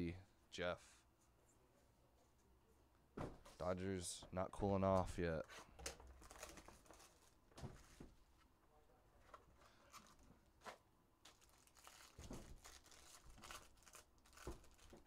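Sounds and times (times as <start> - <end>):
foil wrappers crinkling and tearing: 6.2 - 7.4, 11.2 - 15.0.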